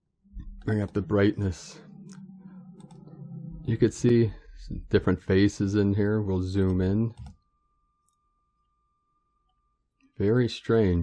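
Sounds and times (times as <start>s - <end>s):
faint high-pitched tone: 0.2s - 11.0s.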